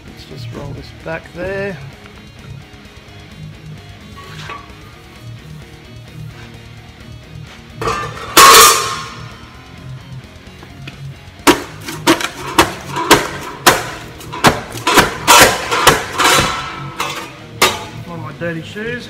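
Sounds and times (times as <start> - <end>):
guitar music: 1.9 - 18.4
sharp metallic thumps: 7.8 - 9.4, 11.4 - 18.1
steel panel clanging on concrete: 7.8 - 9.4, 11.5 - 18.1.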